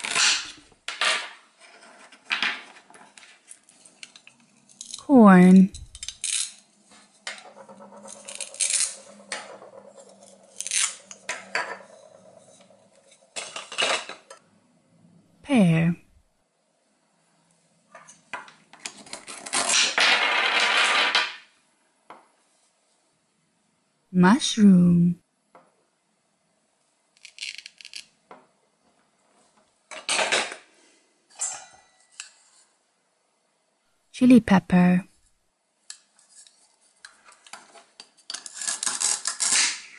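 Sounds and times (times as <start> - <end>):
velcro ripping: 38.6 - 39.9.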